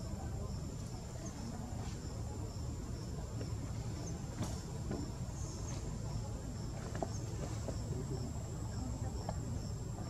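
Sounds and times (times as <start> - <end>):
insect chorus: 0.0 - 10.0.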